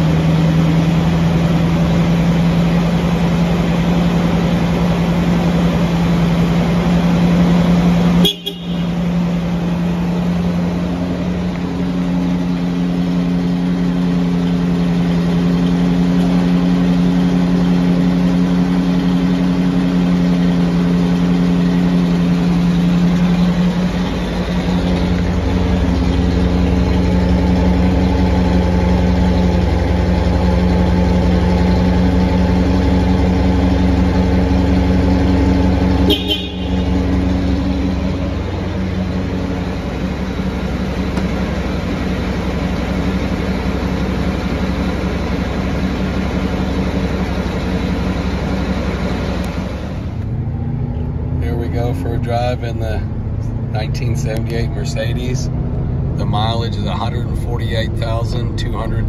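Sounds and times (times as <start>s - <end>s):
car engine idling: 0.0s - 59.0s.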